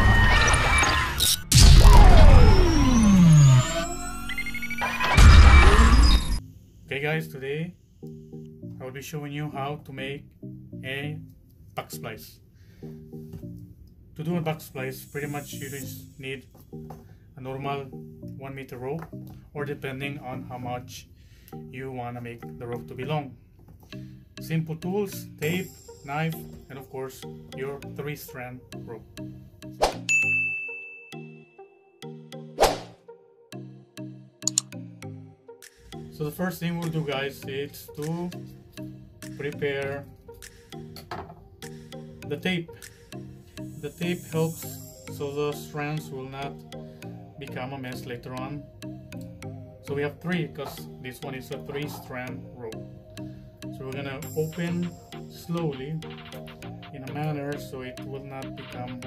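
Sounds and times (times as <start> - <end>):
synthesized falling sweep: 0.0 - 6.4
background music: 0.0 - 59.0
bright bell-like ding: 30.1 - 31.4.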